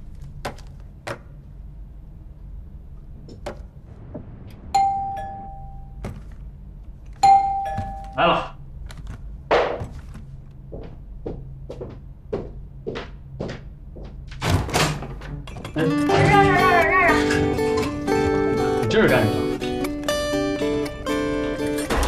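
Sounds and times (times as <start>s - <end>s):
electronic doorbell ding-dong: 4.8s - 5.9s, 7.2s - 8.2s
footsteps: 8.9s - 14.4s
door opening clatter: 14.3s - 15.8s.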